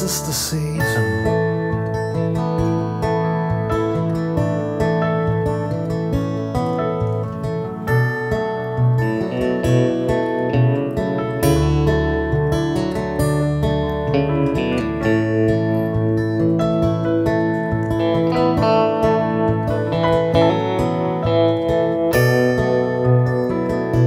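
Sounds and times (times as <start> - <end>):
acoustic guitar band music: 0.0 - 24.0.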